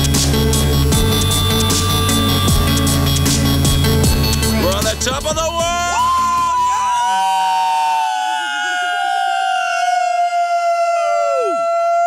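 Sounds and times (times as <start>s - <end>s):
group of people yelling: 5.5s - 12.0s.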